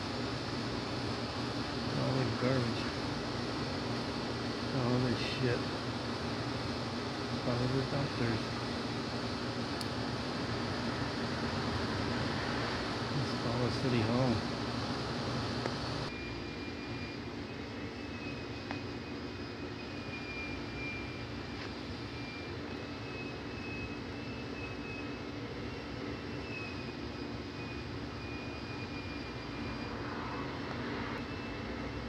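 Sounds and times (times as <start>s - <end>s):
mechanical drone with high whine: 0.0s - 32.0s.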